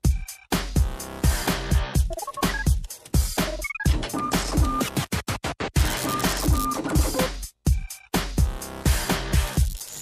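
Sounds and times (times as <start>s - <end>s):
heavy kick drum: 0.0s - 2.0s
electronic pop beat: 0.0s - 10.0s
stuttering chopped stabs: 2.3s - 7.4s.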